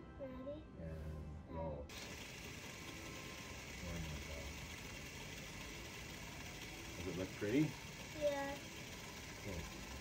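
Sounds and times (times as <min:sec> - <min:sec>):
film camera whirring and ticking: 0:01.9 - 0:10.0.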